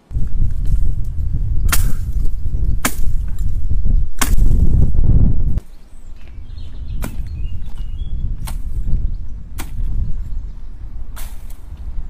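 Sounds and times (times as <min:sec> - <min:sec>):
steady low rumble: 0:00.0 - 0:05.6.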